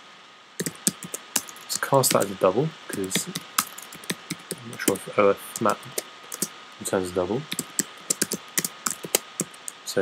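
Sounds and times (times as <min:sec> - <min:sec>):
typing on a keyboard: 0:00.6 - 0:02.3, 0:02.9 - 0:06.5, 0:07.5 - 0:09.8.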